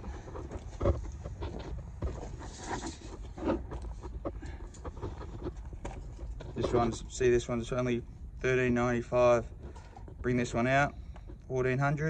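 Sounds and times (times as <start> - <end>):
scuffs on brick rubble: 0.0 - 7.2.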